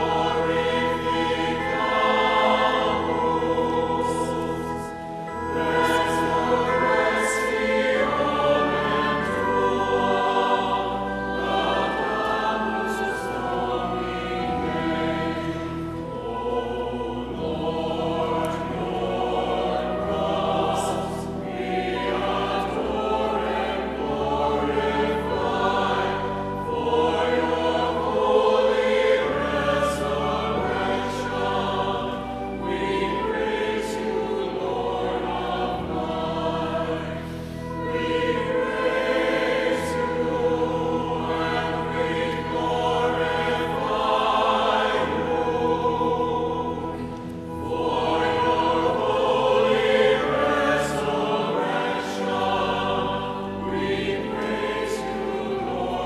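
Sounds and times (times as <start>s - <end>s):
church choir singing: 0.0s - 56.0s
low sustained accompaniment notes: 0.0s - 56.0s.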